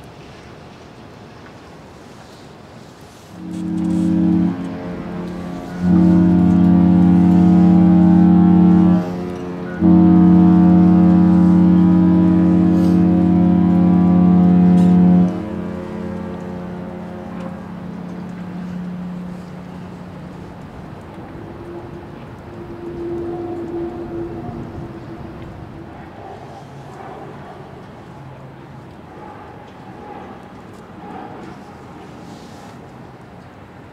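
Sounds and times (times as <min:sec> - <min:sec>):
ship horn blasts: 0:02.0 - 0:33.9.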